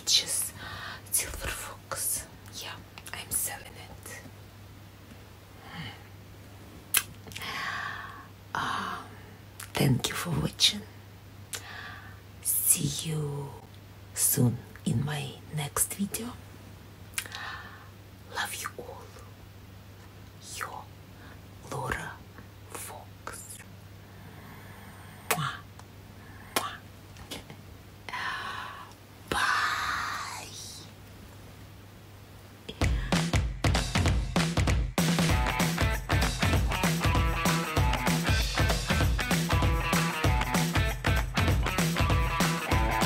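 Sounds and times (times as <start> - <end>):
woman whispering: 0.0 - 4.3, 8.6 - 11.0, 12.4 - 16.4, 18.3 - 19.3, 20.4 - 21.0, 21.6 - 23.7, 25.2 - 25.8, 26.4 - 31.0
faint low hum: 0.0 - 33.5.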